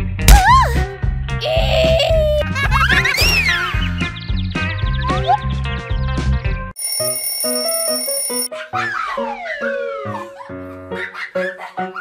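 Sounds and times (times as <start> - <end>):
bouncy background music: 0.0 - 6.7
alarm clock bell ringing: 6.8 - 8.5.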